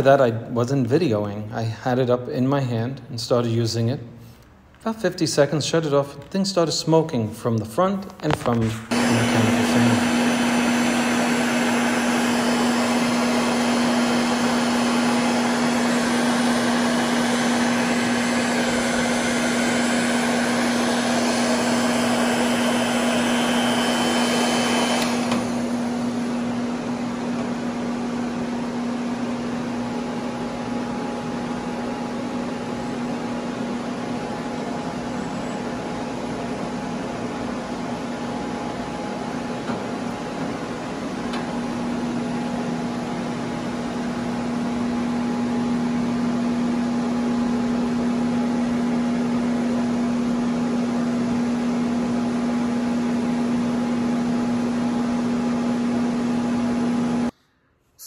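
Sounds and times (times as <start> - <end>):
heat gun fan blowing: 8.2 - 57.4
motor hum: 8.9 - 29.2.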